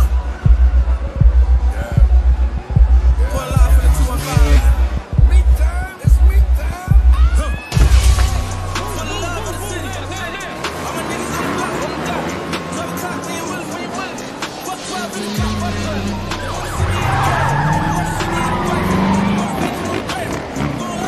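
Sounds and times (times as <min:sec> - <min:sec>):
dirt bike engines revving: 0:00.0 - 0:21.0
music track: 0:00.0 - 0:21.0
tyre squeal: 0:16.6 - 0:20.1.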